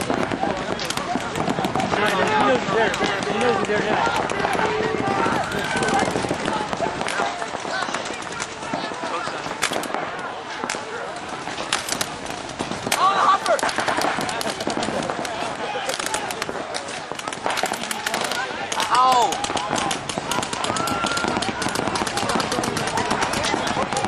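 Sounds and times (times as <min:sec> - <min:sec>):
paintball guns firing: 0:00.0 - 0:24.0
players shouting: 0:00.0 - 0:24.0.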